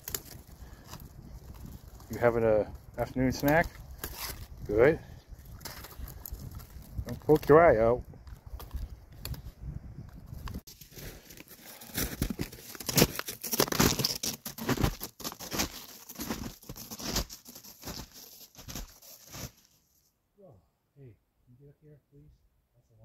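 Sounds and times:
snowshoes crunching on snow: 10.7 - 19.8.

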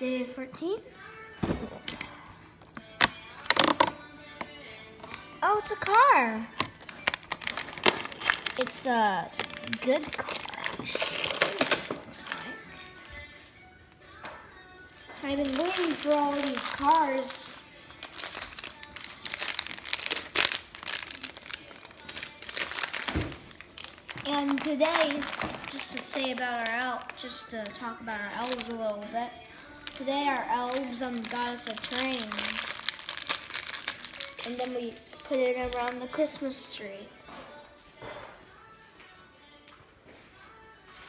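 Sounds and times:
plastic bag crinkling: 2.9 - 4.0, 5.1 - 13.0, 15.2 - 29.1, 29.7 - 36.3.

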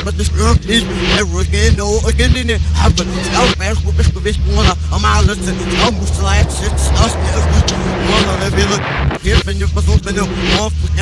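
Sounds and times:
backwards rapped vocals: 0.0 - 10.6
deep bass line: 0.0 - 11.0.

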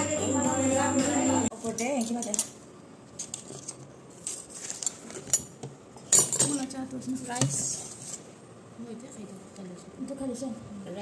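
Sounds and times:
spoons clinking against dishes: 1.7 - 2.6.

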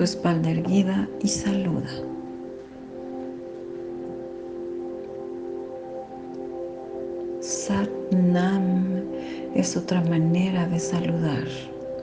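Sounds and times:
faint hiss: 0.0 - 12.0
soft ambient music: 0.0 - 12.0.

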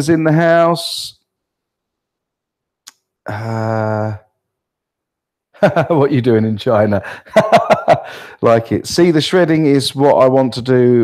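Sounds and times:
man speaking: 0.0 - 1.2, 3.3 - 4.3, 5.6 - 11.0.

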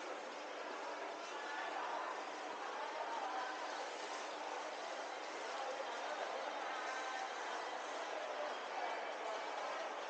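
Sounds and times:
distant voices and hubbub: 0.0 - 10.0.

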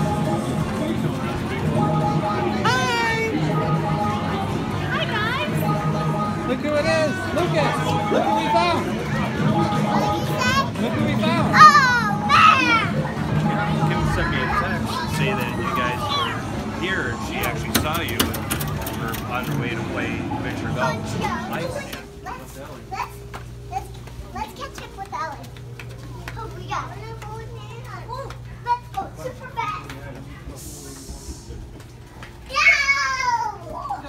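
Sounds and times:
arcade game machines: 0.0 - 22.8
voices: 0.0 - 34.0
child shouting: 11.5 - 12.9, 32.5 - 34.0.

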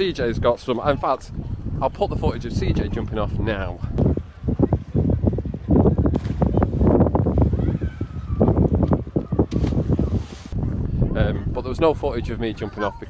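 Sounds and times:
people's voices: 0.0 - 13.0
wind buffeting microphone: 0.0 - 13.0.

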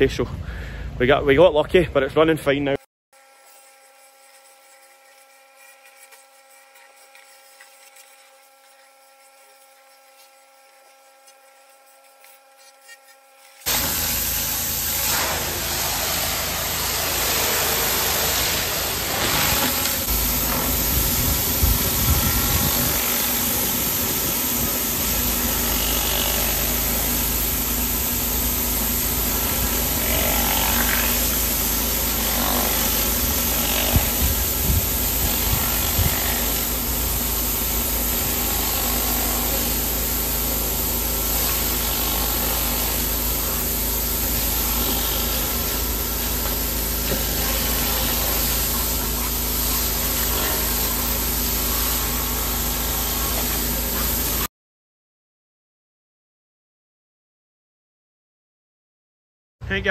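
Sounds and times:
pressure washer spraying hiss: 3.5 - 54.5
engine noise: 13.7 - 54.5.

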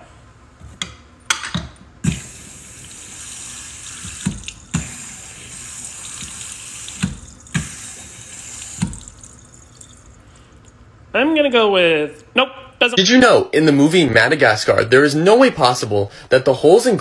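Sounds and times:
faucet running into metal sink: 2.0 - 10.2.

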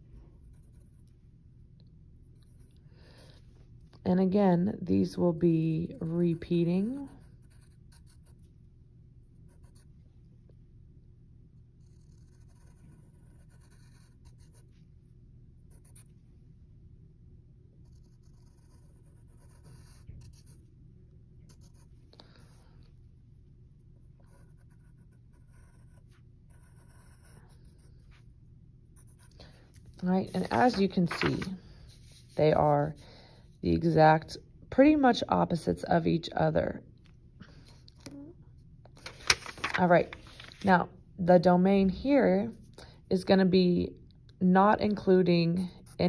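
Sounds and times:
low room hum: 0.0 - 46.0
pencil scratching on paper: 0.4 - 1.2, 5.9 - 8.5, 11.8 - 14.9, 17.8 - 20.6, 24.0 - 28.3, 30.2 - 33.0.

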